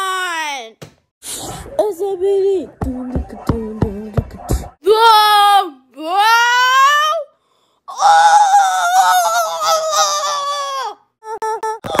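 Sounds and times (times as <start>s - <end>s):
boy yelping: 7.9s - 11.5s
boy shrieking: 7.9s - 11.8s.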